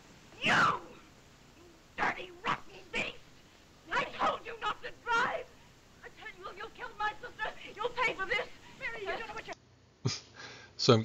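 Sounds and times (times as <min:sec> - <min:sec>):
short high cries: 0:00.4 - 0:01.0.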